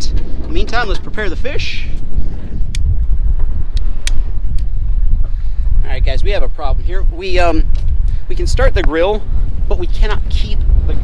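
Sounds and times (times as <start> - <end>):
wind buffeting microphone: 0.0 - 11.0
grill lighter igniter clicks: 3.7 - 4.7.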